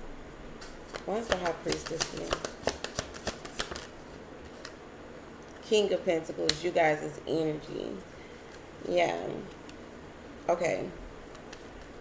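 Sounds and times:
cards clicking: 0:00.9 - 0:04.8
faint card rustling: 0:00.9 - 0:04.8.

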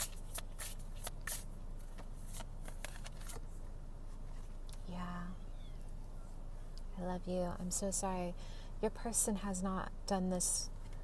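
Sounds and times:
cards being shuffled: 0:00.0 - 0:03.5.

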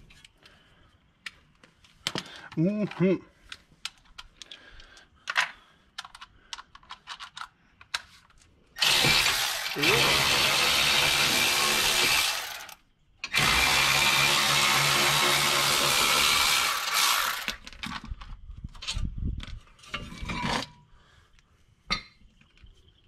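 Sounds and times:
electric ratchet running: 0:08.8 - 0:17.6.

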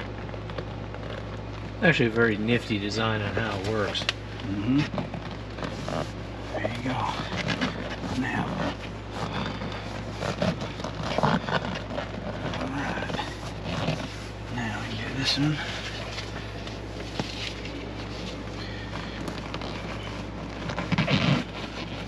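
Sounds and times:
steady low hum: 0:00.0 - 0:22.0
seat cover rubbing and knocks: 0:03.3 - 0:22.0
low talk: 0:06.5 - 0:08.8.

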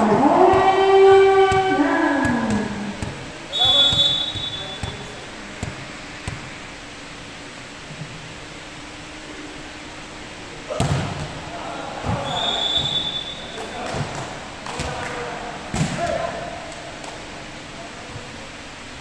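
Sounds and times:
players calling out: 0:00.0 - 0:06.6, 0:10.6 - 0:18.2
volleyball serve hit: 0:00.0 - 0:06.6, 0:10.7 - 0:16.4
low steady hum: 0:00.0 - 0:19.0
short high squeal: 0:03.5 - 0:04.8.

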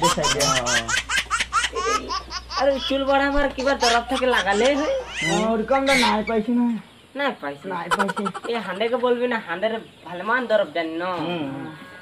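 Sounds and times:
man speaking animatedly: 0:00.0 - 0:01.0, 0:01.9 - 0:06.6, 0:07.8 - 0:09.0.

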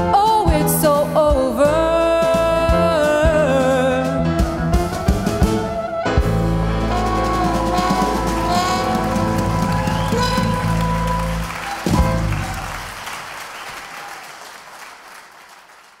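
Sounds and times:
jazz band final chord: 0:05.5 - 0:13.0
audience applause: 0:06.7 - 0:16.0.

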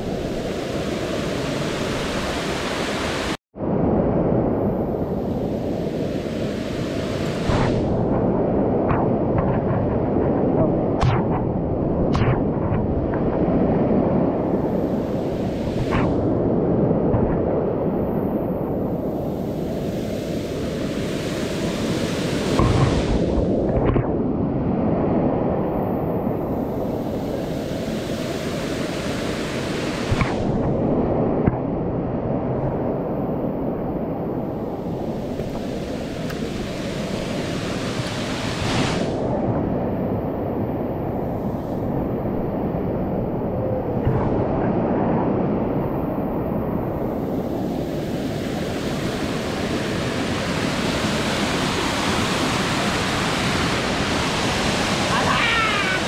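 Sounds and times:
waterfall roaring: 0:48.4 - 0:56.0.

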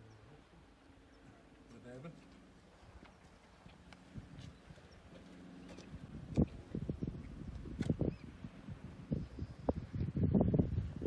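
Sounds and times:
faint distant voices: 0:00.0 - 0:03.4.

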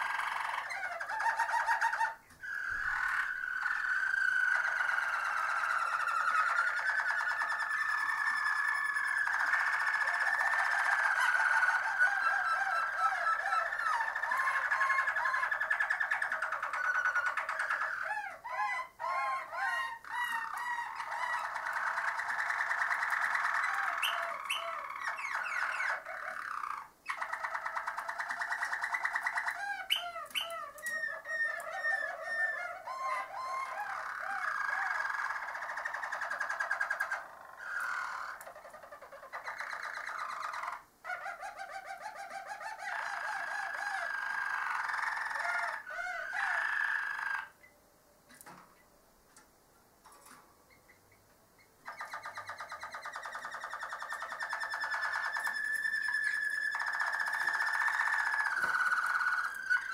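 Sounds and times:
canary singing rolls and trills: 0:00.0 - 0:48.9, 0:50.0 - 0:59.9.

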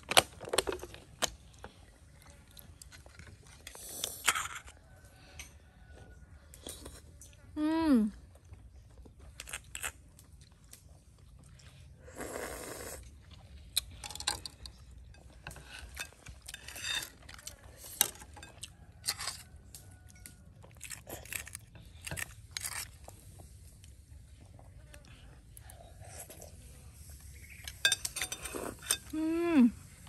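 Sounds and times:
chewing and mouth noises: 0:00.4 - 0:04.8, 0:08.2 - 0:29.2.

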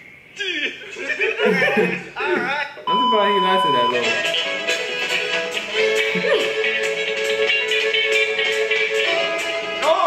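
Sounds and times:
voices from tv: 0:00.0 - 0:10.0
high electronic test tone beep: 0:02.9 - 0:04.0.

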